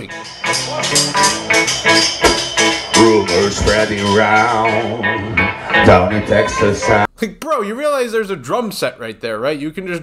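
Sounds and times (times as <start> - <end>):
strummed guitars: 0.0 - 7.1
person singing: 2.8 - 7.1.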